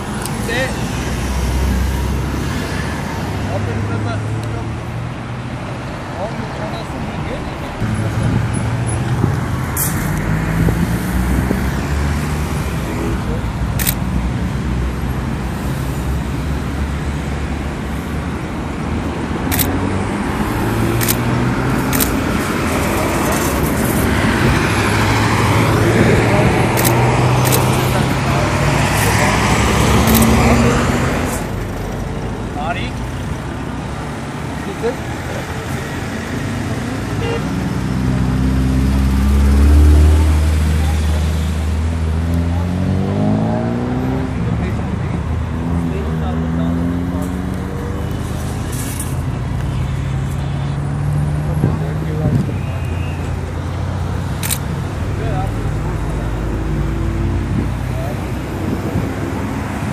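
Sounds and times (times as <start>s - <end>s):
highway traffic passing: 0.0s - 59.9s
vehicle passing microphone: 19.1s - 59.9s
people talking: 26.1s - 31.5s, 44.4s - 50.8s, 51.4s - 53.6s, 55.0s - 56.5s.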